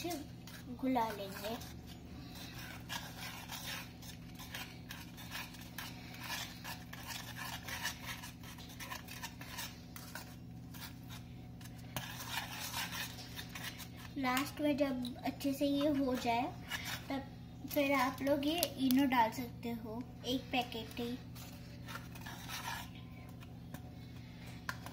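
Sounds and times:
utensil scraping a metal pot: 0.0 - 18.6, 20.2 - 24.9.

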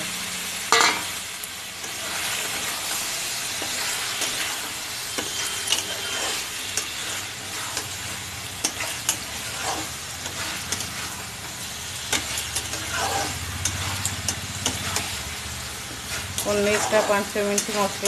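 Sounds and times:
food sizzling in a pan: 0.0 - 18.0
spatula scraping and clicking on pan: 1.8 - 3.0, 3.6 - 18.0.

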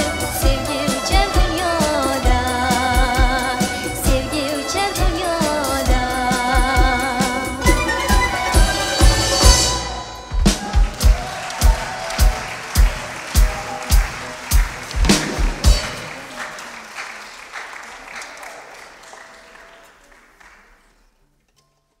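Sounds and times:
orchestra playing loud chords: 0.0 - 11.5
deep drum beats: 0.0 - 16.3
audience applause: 7.6 - 21.1.

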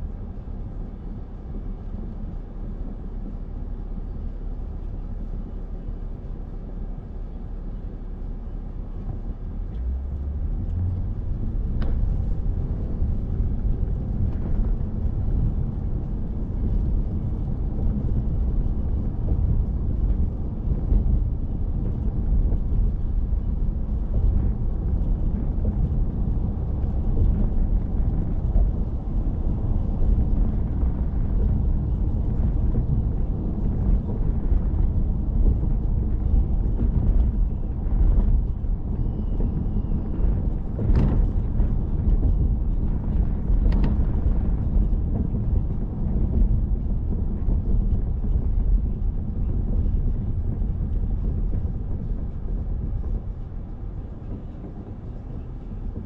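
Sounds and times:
car road and engine rumble: 0.0 - 56.0.

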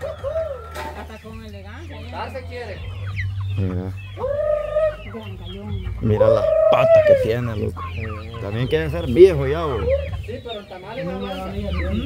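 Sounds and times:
chickens clucking: 0.0 - 12.0
chicken drawn-out call: 3.0 - 5.2, 6.0 - 8.3.

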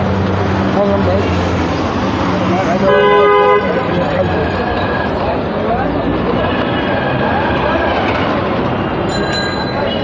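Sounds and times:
traffic: 0.0 - 10.0.

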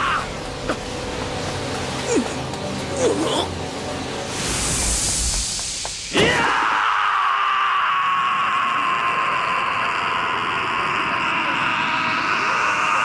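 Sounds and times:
rushing sound effect: 4.0 - 6.9.

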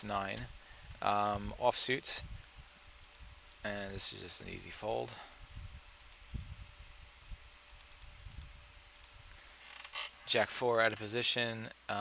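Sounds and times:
faint steady hum: 0.0 - 12.0
computer clicks: 3.0 - 3.7, 6.0 - 6.2, 7.7 - 9.4.

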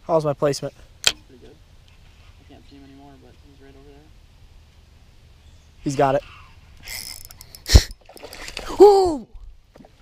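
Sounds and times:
man crying out: 8.7 - 9.3.

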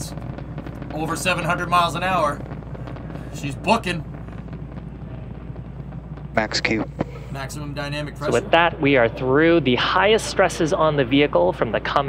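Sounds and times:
constant low hum: 0.0 - 12.0
low rumble and hiss: 0.0 - 12.0.

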